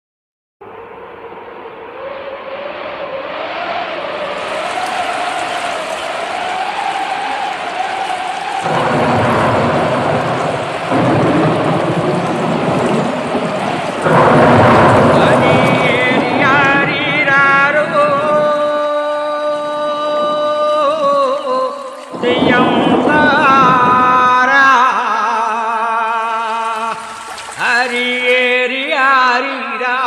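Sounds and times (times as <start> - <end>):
rain: 3.8 - 29.0
thunder: 4.0 - 25.4.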